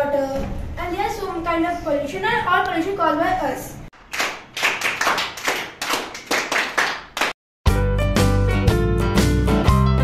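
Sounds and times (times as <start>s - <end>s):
hands clapping: 4.0s - 7.4s.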